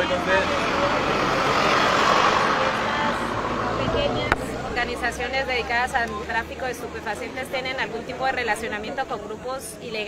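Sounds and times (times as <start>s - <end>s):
vehicle passing by: 0.0s - 7.5s.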